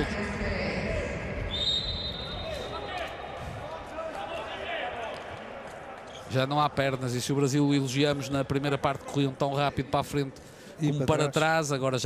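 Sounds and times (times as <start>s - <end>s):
referee whistle blowing: 1.5s - 2.8s.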